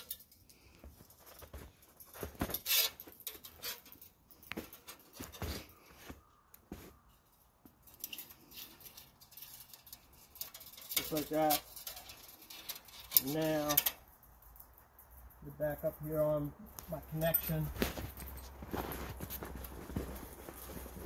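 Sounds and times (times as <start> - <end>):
steel wire scraping and clicking: 0.0 - 5.9, 6.5 - 15.4.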